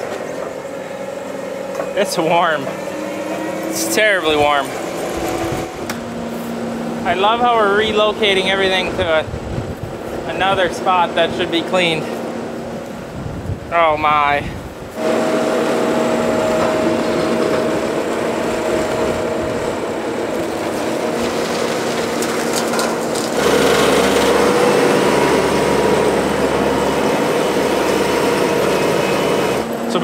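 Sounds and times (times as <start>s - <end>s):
diesel engine running: 0.0s - 30.0s.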